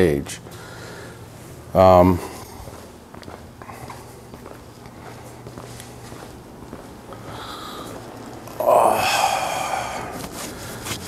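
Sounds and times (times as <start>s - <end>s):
faint footsteps: 0.2s - 8.6s
man saying um: 1.7s - 2.4s.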